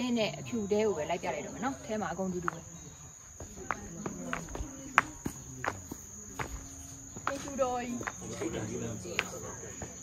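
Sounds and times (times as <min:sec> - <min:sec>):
high-pitched insect drone: 0:00.0 - 0:10.0
footstep clicks: 0:03.3 - 0:10.0.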